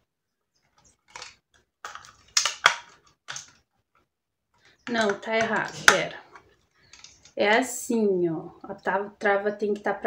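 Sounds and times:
plastic bottle rubbing and rattling: 0:04.8 - 0:07.4.

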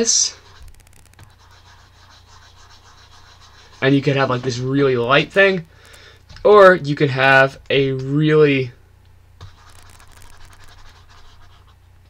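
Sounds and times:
pen stylus scratching tablet: 0:00.3 - 0:04.6, 0:09.4 - 0:11.8.

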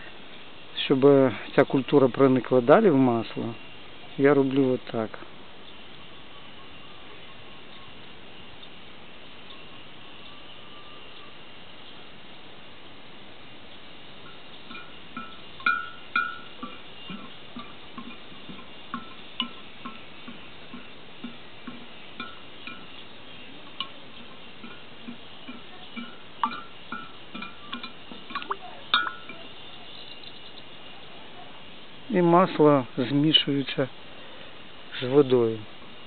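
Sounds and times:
metal spoon clinking against glass: 0:14.7 - 0:20.0, 0:24.6 - 0:29.5.

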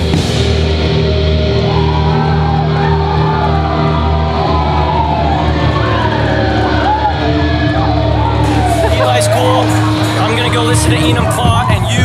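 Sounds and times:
electric guitars and bass drone: 0:00.0 - 0:12.0
guitar feedback tones: 0:00.0 - 0:12.0.

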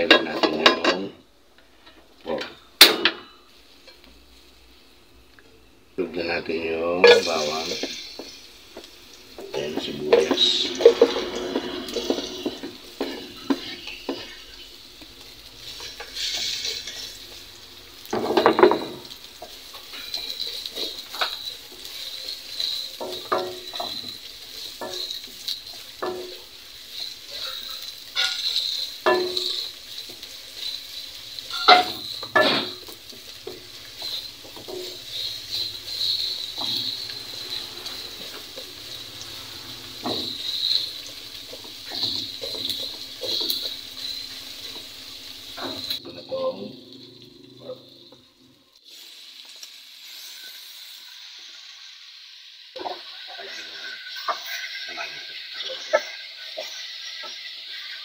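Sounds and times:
onions sizzling in a pot: 0:00.0 - 0:58.0
spatula scraping and tapping pot: 0:07.1 - 0:17.3, 0:18.1 - 0:44.9.

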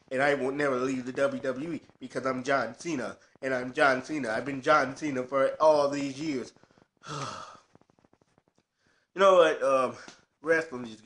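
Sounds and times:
man sighing heavily: 0:07.0 - 0:07.7.

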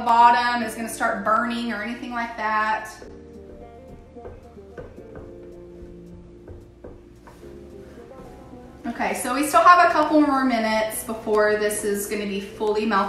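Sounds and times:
quiet music with held notes: 0:00.0 - 0:13.0.

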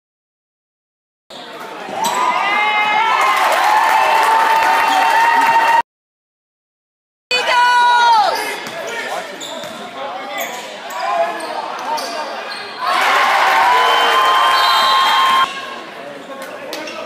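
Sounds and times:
sneakers squeaking on hardwood: 0:08.6 - 0:10.7.

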